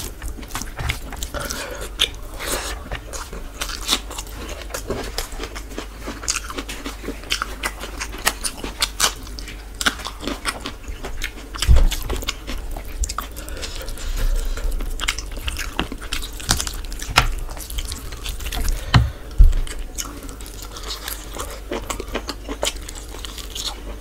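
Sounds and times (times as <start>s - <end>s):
man chewing and mouth smacking: 0.0s - 24.0s.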